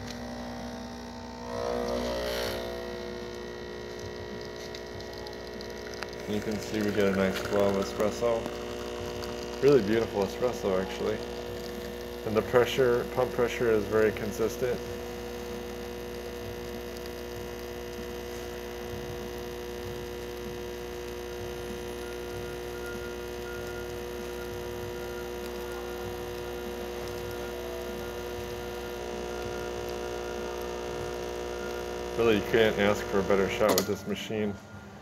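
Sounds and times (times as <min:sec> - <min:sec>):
espresso machine pump humming: 0:00.0 - 0:35.0.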